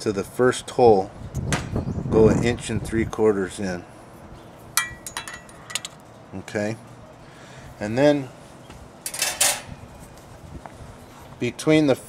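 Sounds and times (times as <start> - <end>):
steel rule clinking on metal: 4.8 - 6.0, 9.0 - 9.7.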